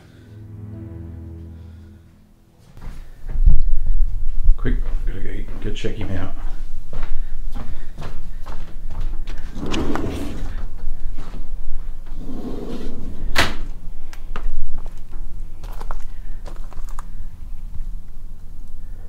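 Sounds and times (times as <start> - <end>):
footsteps: 2.6 - 12.3.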